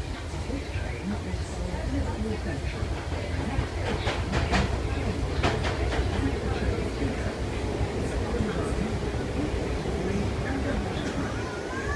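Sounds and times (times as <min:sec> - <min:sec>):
train running rumble: 0:00.0 - 0:11.9.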